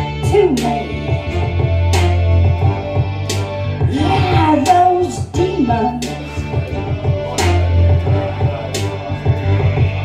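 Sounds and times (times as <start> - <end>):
woman singing into microphone: 0.0 - 1.3, 3.8 - 6.5
instrumental accompaniment with bass: 0.0 - 10.0.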